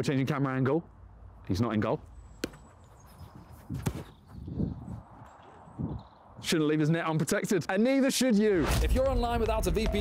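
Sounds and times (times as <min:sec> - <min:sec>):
football kicked with thump: 0:03.6 - 0:04.2.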